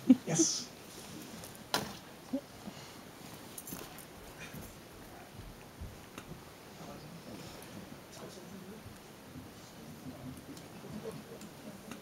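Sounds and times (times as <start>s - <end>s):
faint rustles: 0.7s - 12.0s.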